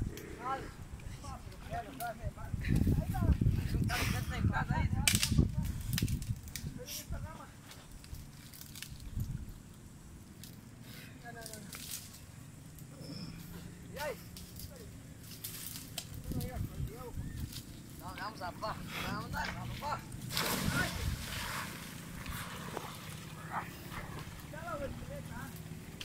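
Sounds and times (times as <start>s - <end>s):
wind buffeting microphone: 0.0s - 7.4s, 16.0s - 25.9s.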